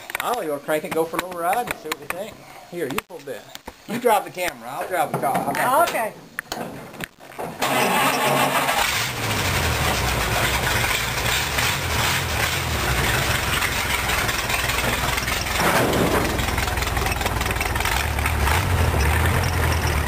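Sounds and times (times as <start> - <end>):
engine starter cranking: 7.6 - 20.0
car engine idling: 8.5 - 20.0.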